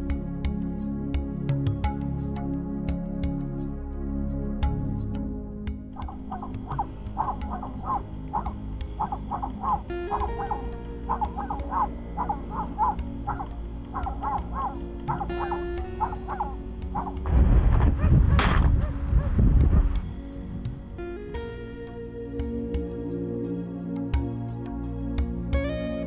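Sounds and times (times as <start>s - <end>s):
background music: 0.0s - 26.0s
dogs barking: 6.0s - 20.0s.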